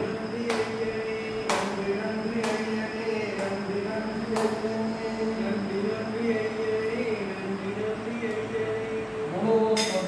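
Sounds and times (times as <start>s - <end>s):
wavering drone: 0.0s - 9.7s
sharp click: 9.8s - 10.0s.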